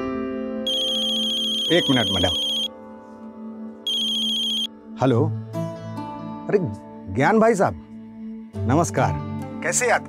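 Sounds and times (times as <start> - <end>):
background music: 0.0 - 10.0
trilling phone ringtone: 0.7 - 2.7, 3.9 - 4.7.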